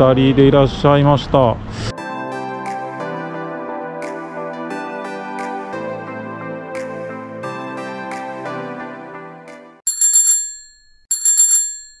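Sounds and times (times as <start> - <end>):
bicycle bell ringing: 9.9 - 12.0.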